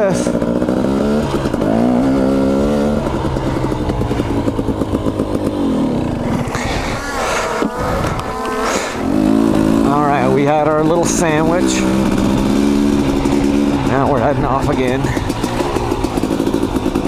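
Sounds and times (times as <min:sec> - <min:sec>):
dirt bike engine revving: 0:00.0 - 0:17.0.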